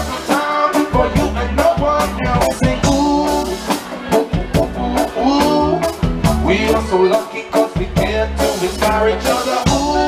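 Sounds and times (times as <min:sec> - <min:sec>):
drum kit beat: 0:00.0 - 0:10.0
electric guitars: 0:00.0 - 0:10.0.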